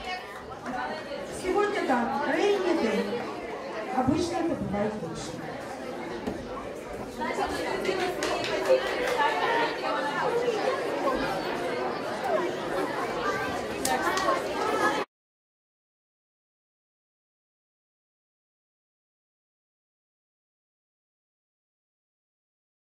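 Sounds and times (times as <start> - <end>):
murmur of overlapping voices: 0.0 - 15.1.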